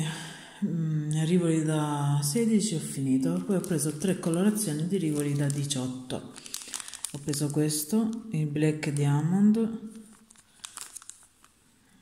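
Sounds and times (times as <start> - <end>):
plastic zip bag crinkling: 3.0 - 12.0.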